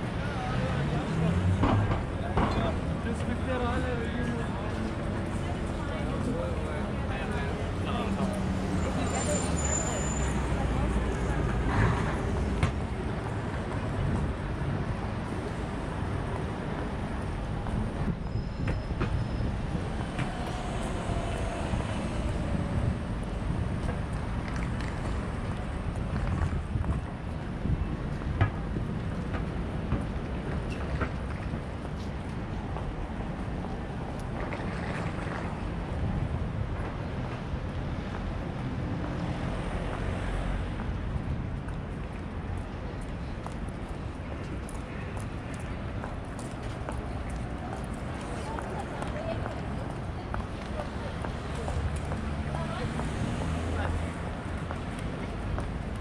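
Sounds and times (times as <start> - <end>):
passers-by talking: 0.0 - 56.0
road traffic: 0.0 - 56.0.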